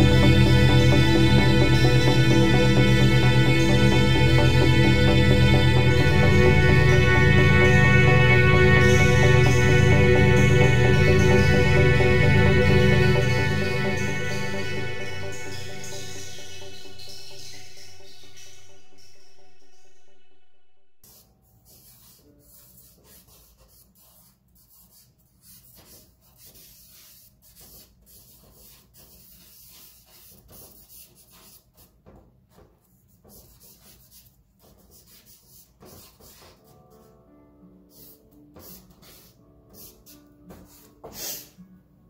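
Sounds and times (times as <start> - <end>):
faint music: 0.0 - 25.6
charcoal scratching on paper: 21.0 - 37.1, 37.9 - 41.5.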